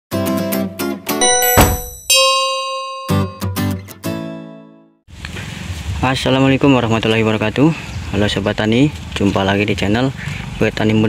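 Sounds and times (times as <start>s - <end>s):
bright bell-like ding: 1.2s - 3.8s.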